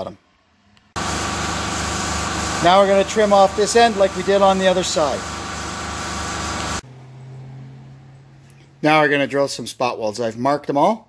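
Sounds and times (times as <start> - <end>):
machine running noise: 1.0 - 6.8.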